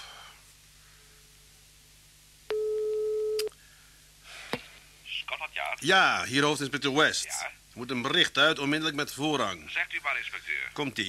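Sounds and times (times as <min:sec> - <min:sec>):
telephone ringing tone: 0:02.5 - 0:03.5.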